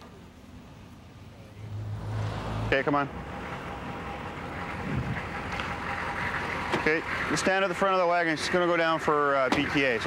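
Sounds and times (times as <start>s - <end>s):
vehicle engine running: 1.3s - 10.0s.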